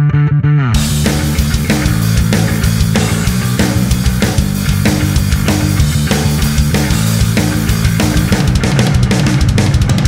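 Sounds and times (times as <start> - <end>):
electric bass: 0.0 - 10.0
drum kit: 0.8 - 10.0.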